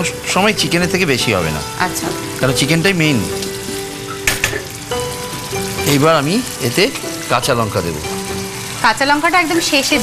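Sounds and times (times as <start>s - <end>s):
curry sizzling: 0.0s - 10.0s.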